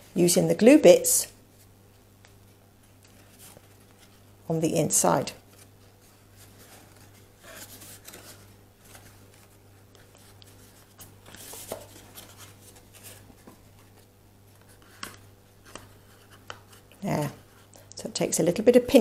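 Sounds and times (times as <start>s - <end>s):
card rustling: 5.4s - 17.0s.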